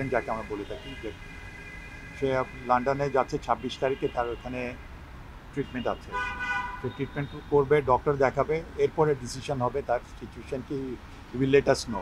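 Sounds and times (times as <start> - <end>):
man talking: 0.0 - 1.2, 2.2 - 4.8, 5.6 - 6.2, 6.9 - 12.0
vehicle horn honk: 0.0 - 4.6, 5.6 - 7.6.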